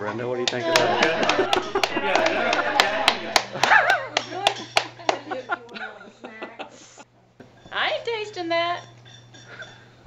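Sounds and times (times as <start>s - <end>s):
sharp hand claps: 0.5s - 5.2s
people laughing: 0.6s - 6.9s.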